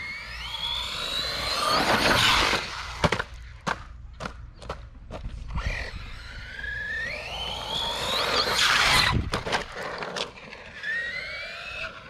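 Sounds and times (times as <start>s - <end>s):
electric motor whining: 0.0s - 3.0s, 5.5s - 12.0s.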